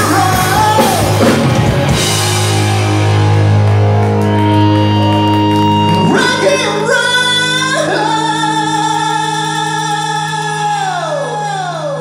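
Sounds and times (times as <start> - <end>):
sustained guitar and bass chord: 0.0 - 12.0.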